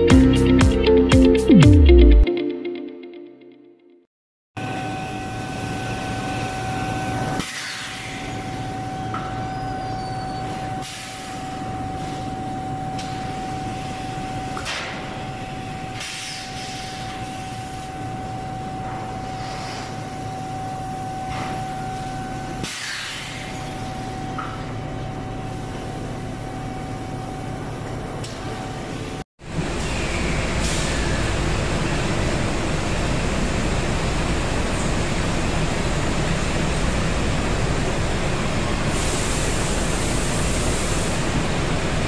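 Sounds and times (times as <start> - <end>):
machinery humming and whining: 4.6 - 42.0.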